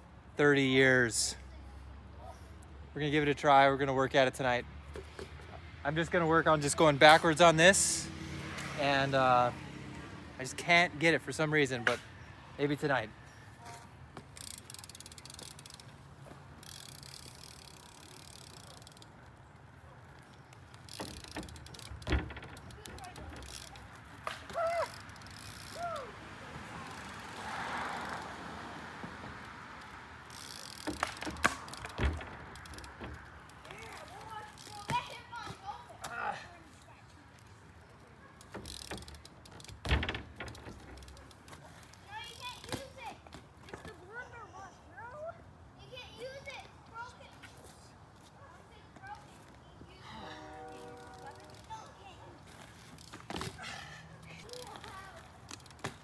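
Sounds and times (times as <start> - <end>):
bike tyre noise on asphalt: 4.9 - 44.0, 47.3 - 56.0
bike wheels knocking on ground: 20.9 - 25.1, 30.4 - 33.8.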